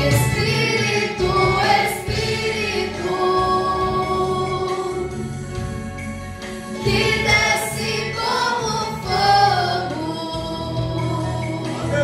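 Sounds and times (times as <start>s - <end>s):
woman singing into microphone: 0.0s - 5.2s, 6.8s - 11.8s
low musical accompaniment: 0.0s - 12.0s.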